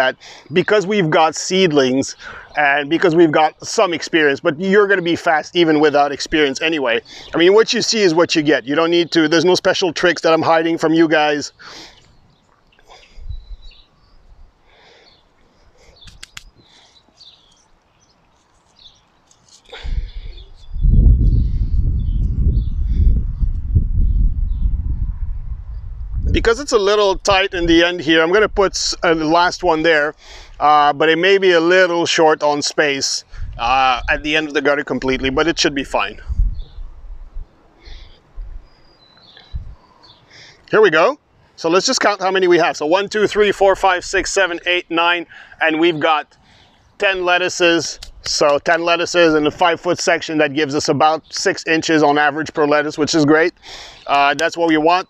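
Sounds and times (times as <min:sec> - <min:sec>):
small birds chirping: 0:00.1 - 0:25.0, 0:25.7 - 0:55.0
small bird chirping: 0:12.0 - 0:25.0, 0:36.4 - 0:40.3
sharp clicks: 0:16.0 - 0:16.6, 0:47.9 - 0:48.6
loud low rumble: 0:20.8 - 0:26.4.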